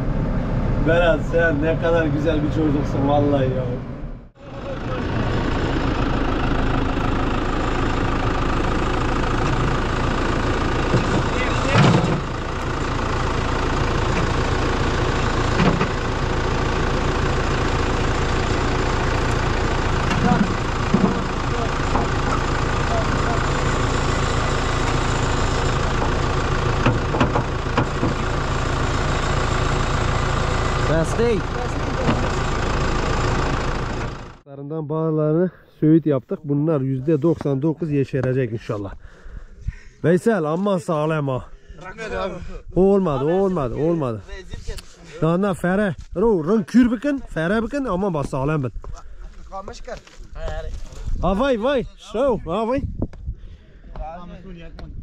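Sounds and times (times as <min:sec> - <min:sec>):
tractor diesel engine running: 0:00.0 - 0:34.5, 0:35.3 - 0:54.4.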